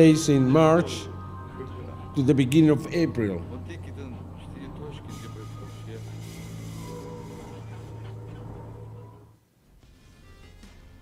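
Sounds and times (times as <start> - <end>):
steady low hum: 0.0 - 9.7.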